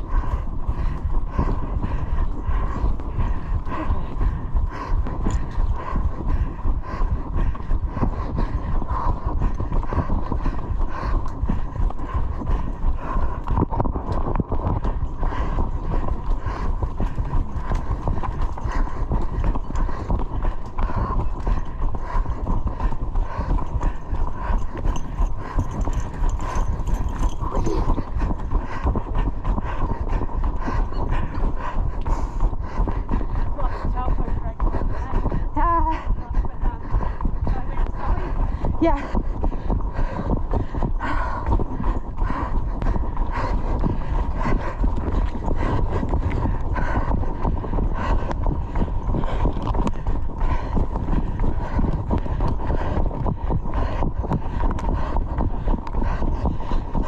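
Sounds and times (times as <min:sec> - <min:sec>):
heavy breathing: 0:00.0 - 0:57.0
running footsteps on dirt: 0:00.0 - 0:57.0.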